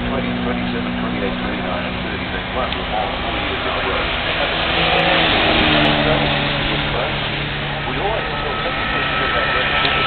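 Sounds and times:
racing car passing: 0.0s - 10.0s
wash of engine noise: 0.0s - 10.0s.

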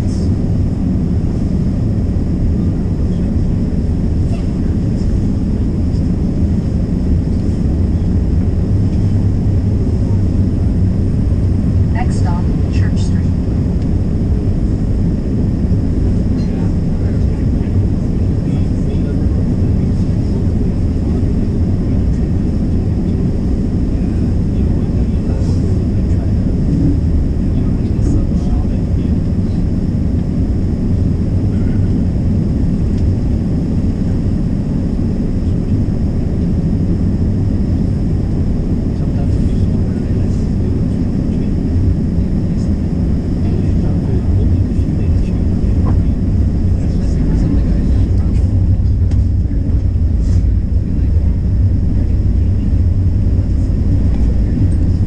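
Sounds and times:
streetcar rumbling on rails: 7.4s - 15.1s, 23.8s - 29.6s, 43.5s - 55.0s.

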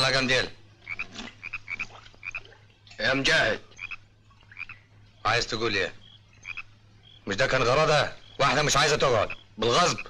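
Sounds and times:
frogs croaking: 0.0s - 10.0s
steady low hum: 0.0s - 10.0s.

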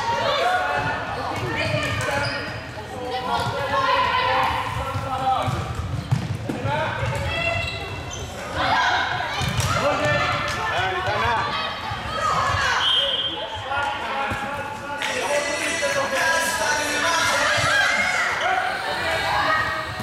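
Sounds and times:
players calling out: 14.6s - 20.0s.

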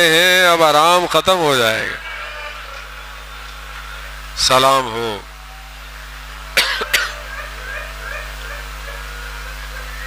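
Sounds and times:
steady low hum: 0.0s - 10.0s
man speaking: 4.4s - 5.3s
man coughing into microphone: 6.6s - 7.2s.

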